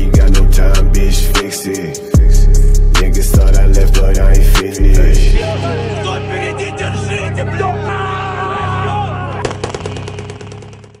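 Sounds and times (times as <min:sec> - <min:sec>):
steady bass: 0:00.0 - 0:01.4, 0:02.2 - 0:07.8
rap track: 0:00.0 - 0:10.0
rapid rattle of cracks: 0:09.4 - 0:11.0.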